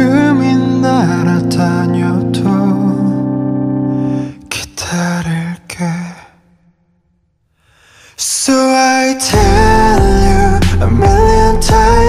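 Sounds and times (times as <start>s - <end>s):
pop song: 0.0s - 6.4s, 8.0s - 12.0s
singer's breath: 7.5s - 8.2s.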